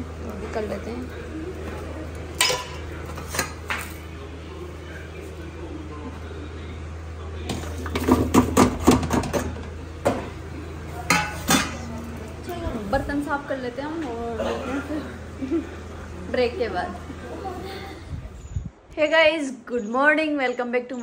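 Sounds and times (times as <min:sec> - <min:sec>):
steady low hum: 0:00.0 - 0:19.4
steel dishes clinking: 0:02.4 - 0:03.9, 0:11.1 - 0:11.9.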